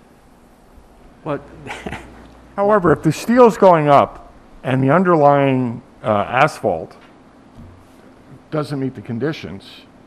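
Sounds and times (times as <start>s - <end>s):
man laughing: 1.6s - 2.2s
man speaking: 2.6s - 7.0s, 8.3s - 9.9s.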